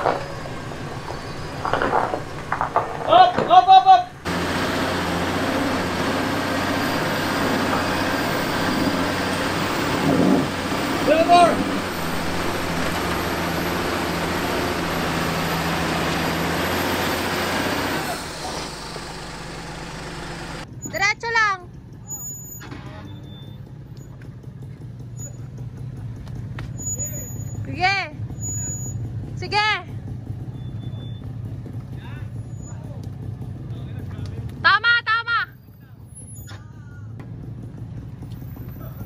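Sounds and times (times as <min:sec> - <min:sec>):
off-road engine running: 0:00.0 - 0:39.0.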